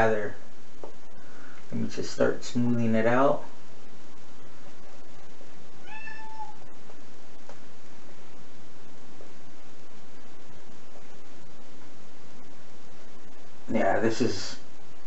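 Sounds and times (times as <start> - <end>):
cat meowing: 5.8 - 6.6.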